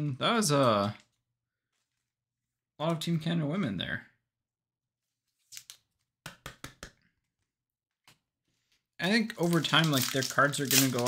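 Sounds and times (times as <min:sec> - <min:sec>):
cards knocking on tabletop: 0:06.3 - 0:07.0.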